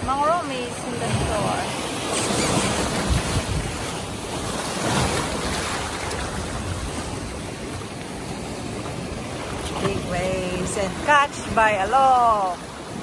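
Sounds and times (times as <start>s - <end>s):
sea waves breaking on rocks: 0.0s - 13.0s.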